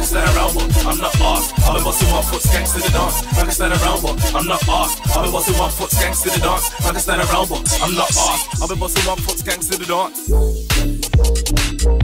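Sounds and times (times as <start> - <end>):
rapped vocal: 0.0 - 10.4
loud house music with kick drum: 0.0 - 12.0.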